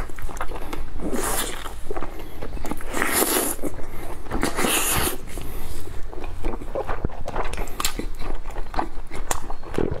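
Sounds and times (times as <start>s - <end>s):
wet chewing and lip-smacking: 0.0s - 10.0s.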